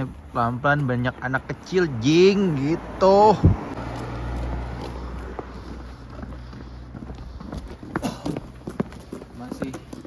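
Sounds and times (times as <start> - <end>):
faint footsteps on pavement: 0.0 - 10.0
car driving past: 2.5 - 7.6.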